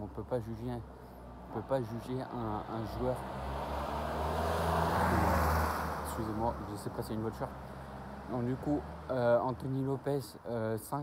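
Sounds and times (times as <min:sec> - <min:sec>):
vehicle passing by: 0:01.1 - 0:10.0.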